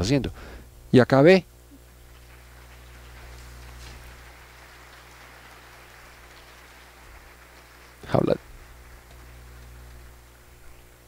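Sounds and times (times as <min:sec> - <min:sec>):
audience applauding: 0:01.9 - 0:10.6.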